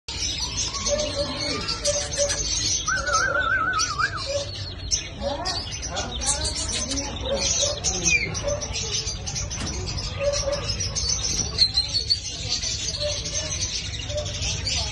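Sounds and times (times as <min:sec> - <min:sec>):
cage birds chirping: 0:00.1 - 0:14.9
warbling bird trill: 0:00.4 - 0:05.2.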